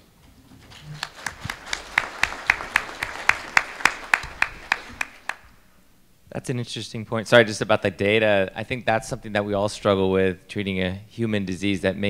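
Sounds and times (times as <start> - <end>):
audience applauding: 0.6 - 5.6
sharp close claps: 0.7 - 5.6.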